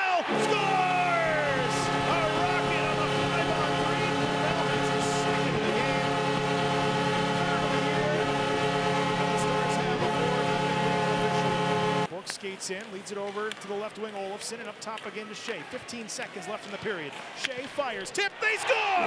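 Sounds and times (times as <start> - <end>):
goal horn blowing: 0.0 - 12.1.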